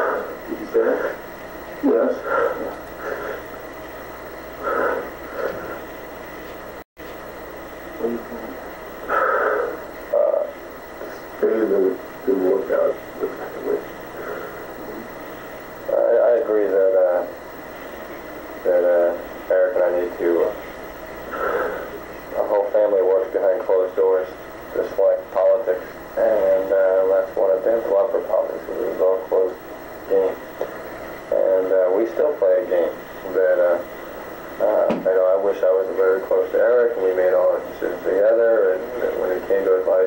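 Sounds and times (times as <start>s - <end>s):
man speaking on old tape: 0.0s - 2.8s, 7.8s - 8.7s, 10.1s - 14.0s, 15.8s - 40.0s.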